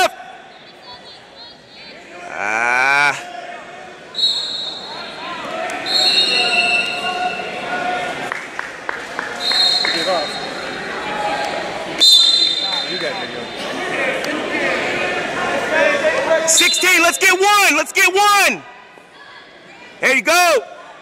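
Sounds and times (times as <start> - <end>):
shouts and chatter: 0.0 - 21.0
sports whistle blasts: 4.2 - 5.1, 5.8 - 7.5, 9.4 - 10.6, 12.0 - 13.2, 16.5 - 17.6.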